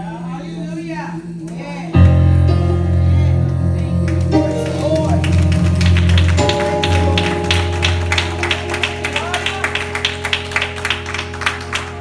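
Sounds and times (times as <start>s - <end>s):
gospel instrumental chords: 1.2s - 12.0s.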